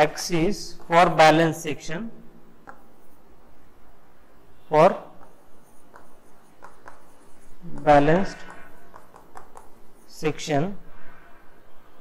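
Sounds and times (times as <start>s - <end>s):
stylus tapping and scratching screen: 2.6s - 3.6s, 5.2s - 10.7s.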